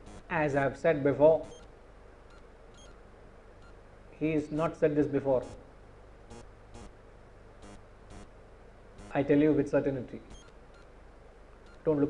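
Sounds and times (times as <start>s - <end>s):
faint low hum: 0.0s - 12.0s
faint high-pitched blips: 1.4s - 1.7s, 2.3s - 3.0s, 10.2s - 10.9s, 11.6s - 12.0s.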